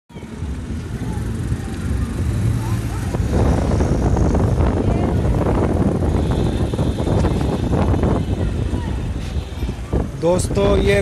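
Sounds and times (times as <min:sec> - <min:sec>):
scooter engine running: 0:00.1 - 0:08.7
road and wind rush: 0:00.1 - 0:11.0.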